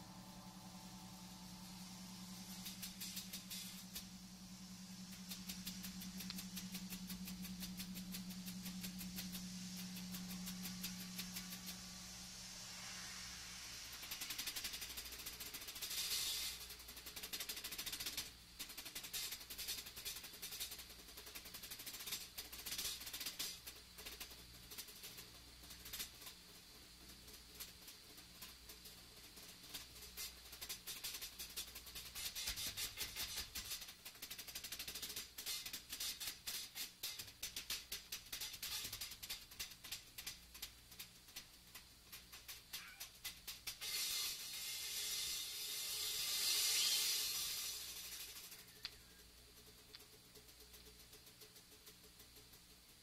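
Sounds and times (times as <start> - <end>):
low held tone: 0.0 - 13.9
loose drum and cymbal hits: 0.0 - 40.2.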